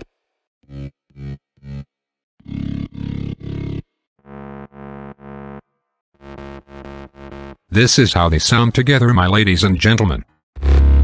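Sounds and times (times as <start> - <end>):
synthesized bass stabs: 10.6 - 11.0.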